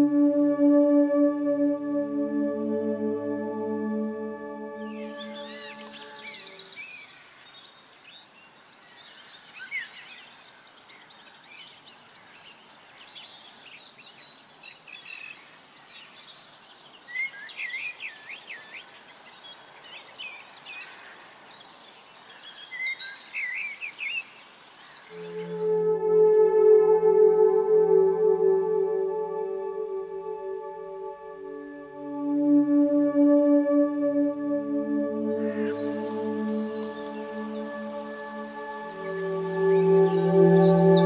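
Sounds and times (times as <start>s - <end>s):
ambient music with singing bowl tone: 0.0s - 7.0s, 25.1s - 41.0s
outdoor background hiss: 0.0s - 26.2s, 27.3s - 41.0s
small birds singing: 4.8s - 25.6s, 35.4s - 41.0s.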